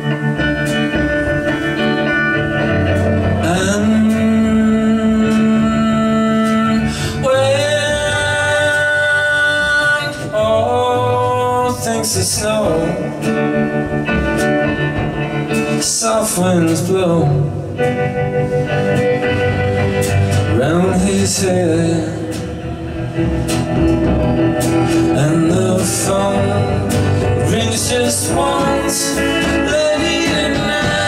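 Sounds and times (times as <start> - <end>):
acoustic guitar: 0.0 - 31.0
electric guitar: 0.0 - 31.0
man singing: 3.2 - 13.9, 15.5 - 18.2, 20.3 - 23.8, 24.4 - 31.0
woman singing: 25.2 - 31.0.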